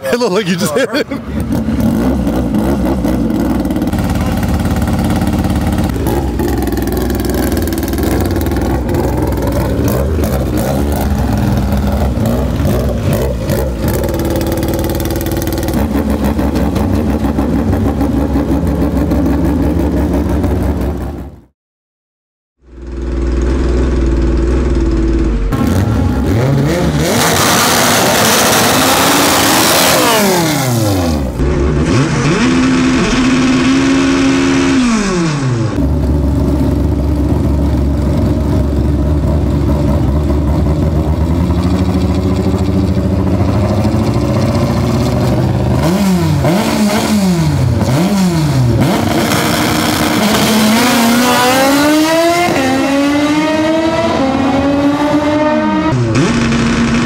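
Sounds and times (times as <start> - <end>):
car engine revving: 0.1 - 21.2, 22.8 - 57.0.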